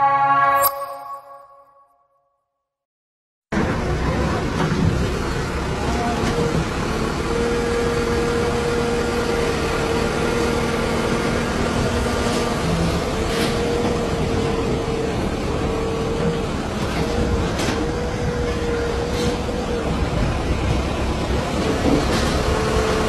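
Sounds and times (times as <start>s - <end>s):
heavy machinery engine droning: 3.6s - 23.0s.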